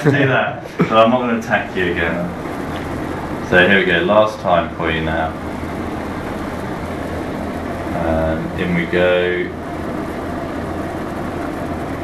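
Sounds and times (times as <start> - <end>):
even hiss: 0.0 - 12.0
low mechanical hum: 0.0 - 12.0.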